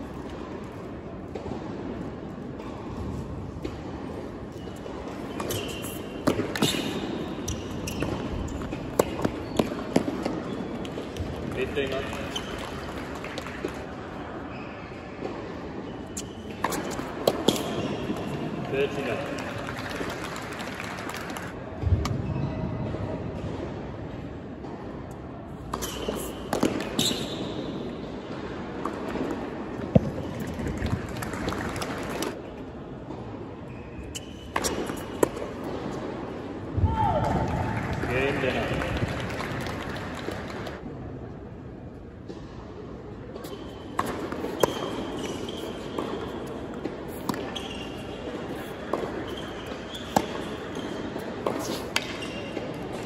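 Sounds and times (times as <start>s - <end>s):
tennis ball bouncing on hard court: 4.8s - 13.9s, 16.2s - 20.3s, 25.7s - 27.6s, 28.2s - 32.4s, 34.2s - 36.1s, 43.4s - 53.0s
tennis ball hit by rackets: 5.3s - 13.8s, 16.2s - 18.4s, 25.7s - 27.4s, 43.4s - 47.8s, 48.5s - 52.9s.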